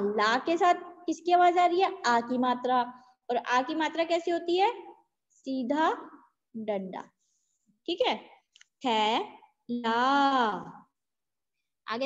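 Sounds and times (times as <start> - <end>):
woman speaking: 0.0 - 4.9, 7.9 - 10.8.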